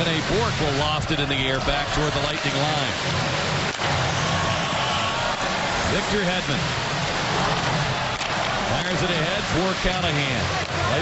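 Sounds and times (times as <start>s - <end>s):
arena crowd din: 0.0s - 11.0s.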